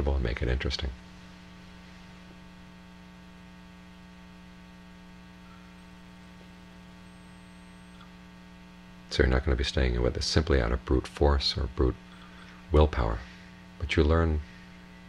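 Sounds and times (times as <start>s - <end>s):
low mains hum: 0.0s - 15.0s.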